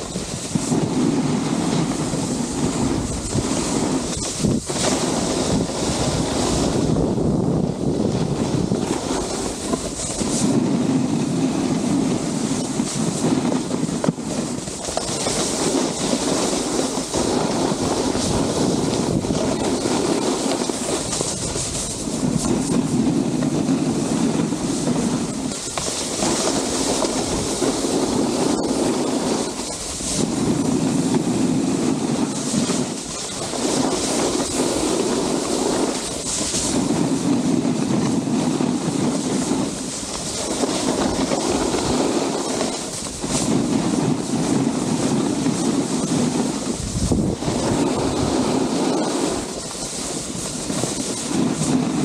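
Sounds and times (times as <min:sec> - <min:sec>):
snowboard scraping on snow: 0:00.0 - 0:52.0.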